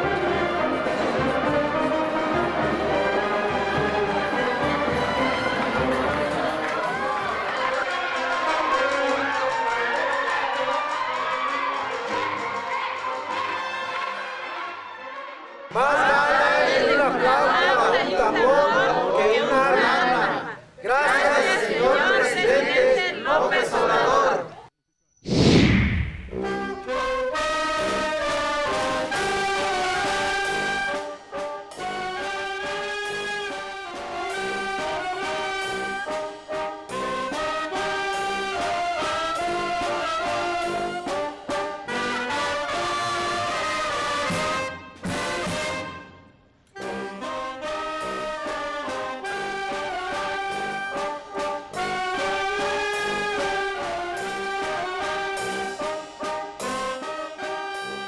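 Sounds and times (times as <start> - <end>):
brass band playing: 0.0 - 24.4, 26.2 - 58.0.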